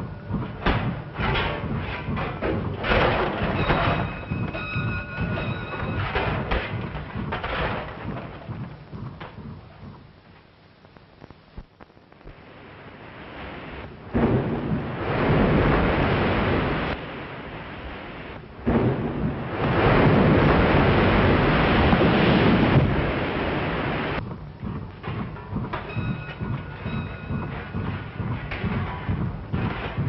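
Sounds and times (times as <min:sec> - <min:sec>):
loud rushing noise bursts: 0:12.3 - 0:24.2.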